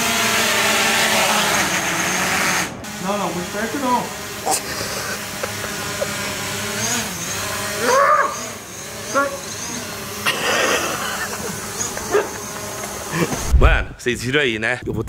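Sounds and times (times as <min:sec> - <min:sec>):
drone propellers buzzing: 0:00.0 - 0:14.0
loud low thump: 0:13.4 - 0:14.0.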